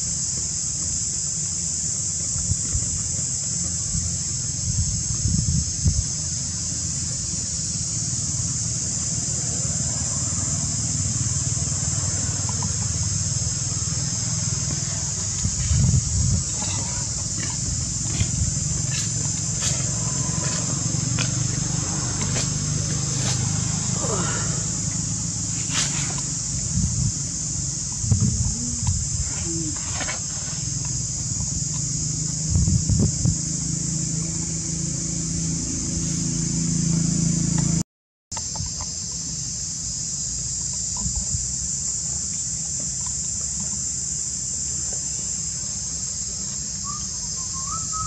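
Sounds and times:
high-pitched insect drone: 0.0s - 37.8s, 38.4s - 48.0s
wind rumble on microphone: 2.1s - 7.5s, 12.0s - 23.8s, 25.0s - 30.2s, 31.0s - 34.5s.

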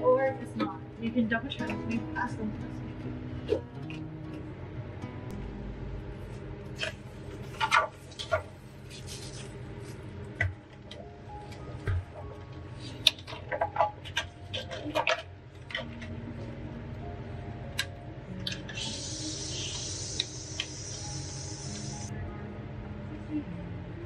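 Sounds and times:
faint background music: 0.0s - 24.0s
steady hiss: 18.7s - 22.1s.

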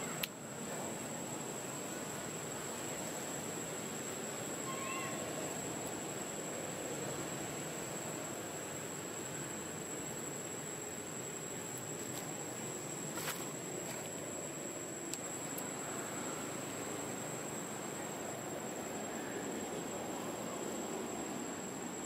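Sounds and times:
steady outdoor hiss: 0.0s - 22.0s.

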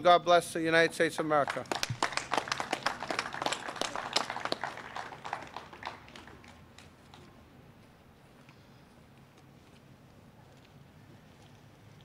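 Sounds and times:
small group applauding: 1.4s - 7.3s.

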